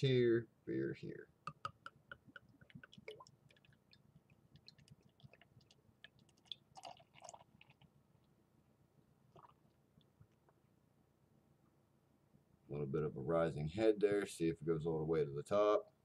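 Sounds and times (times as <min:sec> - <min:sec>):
pouring gurgles: 0:02.2 - 0:04.0, 0:04.6 - 0:07.8
beer pouring into glass: 0:06.4 - 0:07.6.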